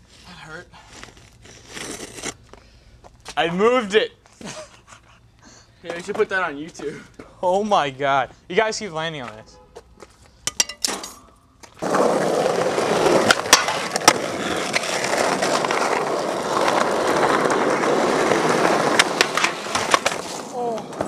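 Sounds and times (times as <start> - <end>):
skateboard wheels rolling on asphalt: 11.6 - 21.0
skateboard clicks and knocks: 11.8 - 21.0.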